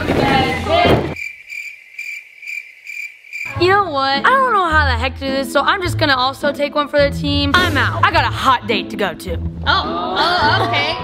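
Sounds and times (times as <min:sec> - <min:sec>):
cricket chirping: 0:01.2 - 0:03.6.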